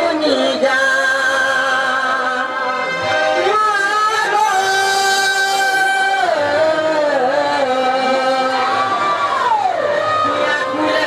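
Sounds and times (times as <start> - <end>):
person singing through loudspeakers: 0.0 - 11.0.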